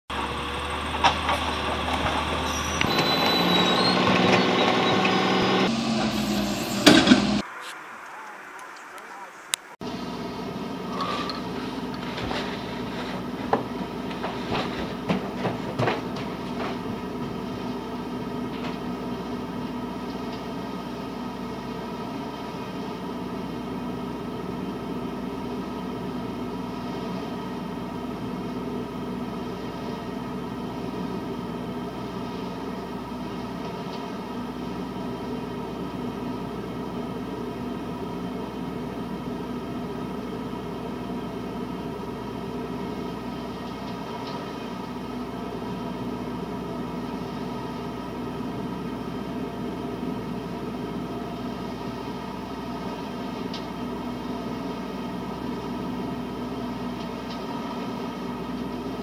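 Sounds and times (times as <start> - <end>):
leaf vacuum droning: 0.1 - 59.0.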